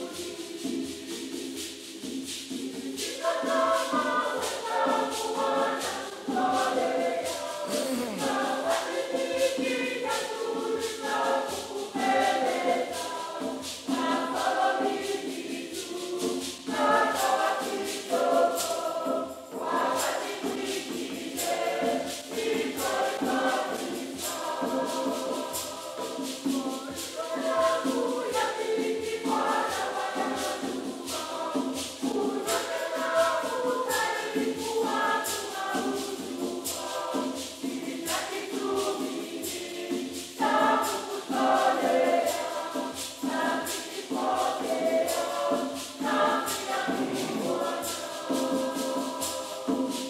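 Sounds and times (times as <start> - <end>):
choir singing a hymn: 0.0 - 50.0
steady percussion beat: 0.0 - 50.0.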